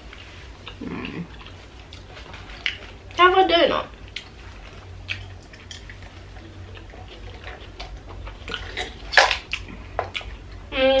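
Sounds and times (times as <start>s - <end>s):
soft chewing: 0.0s - 3.3s, 3.9s - 10.7s
mouth clicks and smacks: 6.7s - 10.3s.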